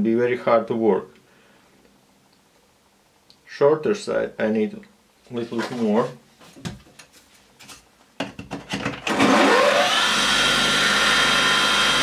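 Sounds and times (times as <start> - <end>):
bench grinder motor whine: 9.1 - 12.0.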